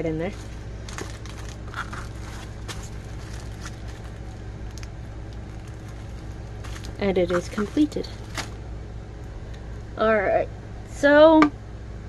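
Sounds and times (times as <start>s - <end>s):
plastic bag crinkling: 0.0s - 8.6s
steady low hum: 0.0s - 12.0s.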